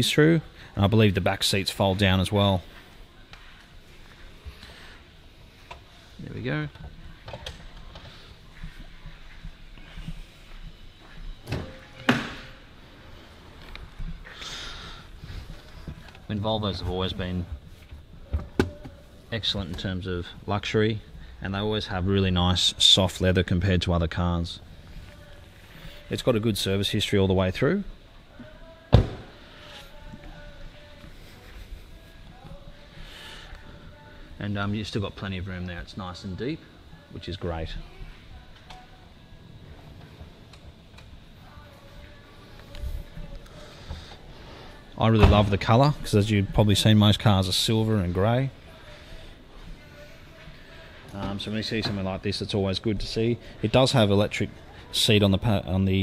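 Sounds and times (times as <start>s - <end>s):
faint background noise: 0.0s - 56.0s.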